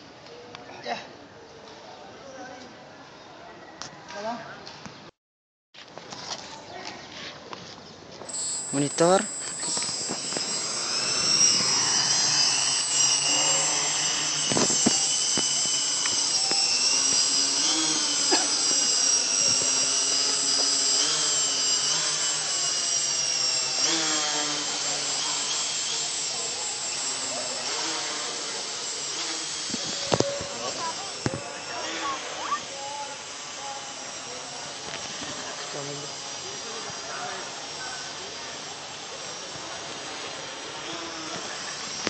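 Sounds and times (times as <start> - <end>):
drone propellers whining: 8.3 - 42.0.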